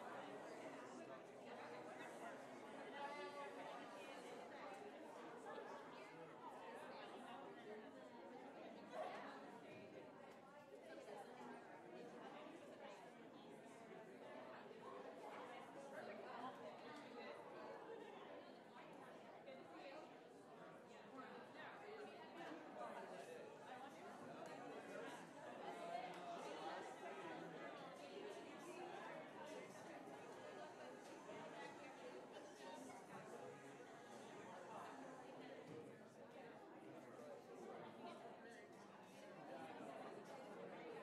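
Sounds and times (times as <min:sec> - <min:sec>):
chatter of many people: 0:00.0 - 0:41.0.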